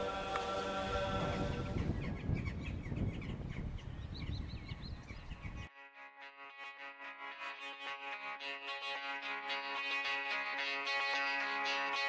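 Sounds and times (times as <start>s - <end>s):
sustained musical chord: 0.0s - 1.9s, 5.7s - 12.0s
small birds chirping: 0.2s - 5.7s.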